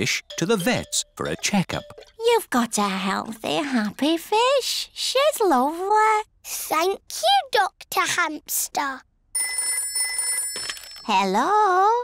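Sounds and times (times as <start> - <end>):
telephone bell ringing: 9.4 - 11.2.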